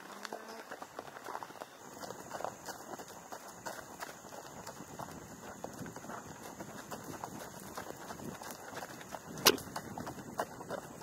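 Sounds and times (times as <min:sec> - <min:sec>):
horse hoofbeats on gravel: 0:00.0 - 0:11.0.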